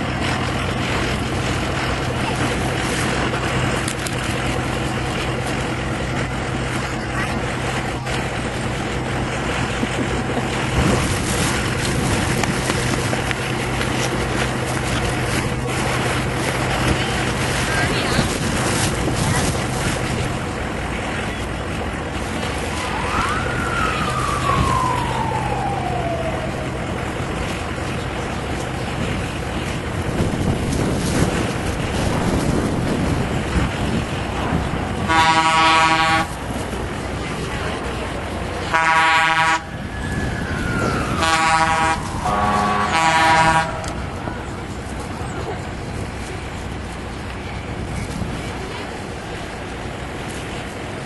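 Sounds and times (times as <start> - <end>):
steady rushing background: 0.0 - 35.5, 39.6 - 51.0
falling whistle glides: 22.8 - 26.9, 39.8 - 44.1
horn blasts: 35.0 - 36.4, 38.6 - 39.7, 41.1 - 44.1.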